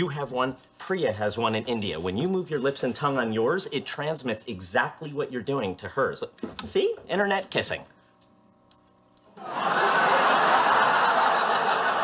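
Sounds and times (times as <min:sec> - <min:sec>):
studio audience laughing: 0:09.4 - 0:12.0.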